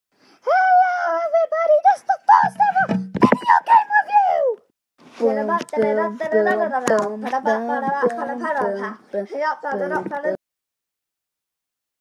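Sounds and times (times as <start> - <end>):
child singing: 5.2 - 10.4.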